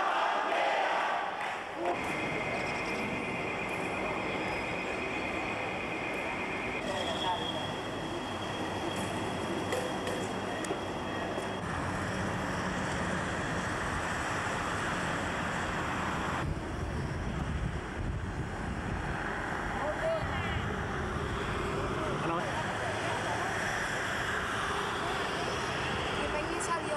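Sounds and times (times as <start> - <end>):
noisy outdoor background: 0.0 - 26.9.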